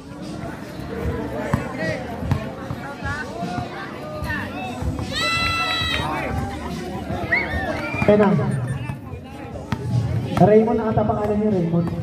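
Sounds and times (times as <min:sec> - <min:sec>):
crowd voices and chatter: 0:00.0 - 0:12.0
basketball bouncing on court: 0:01.5 - 0:02.8.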